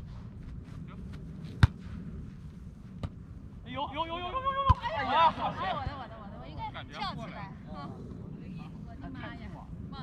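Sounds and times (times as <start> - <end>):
faint background noise: 0.0 - 10.0.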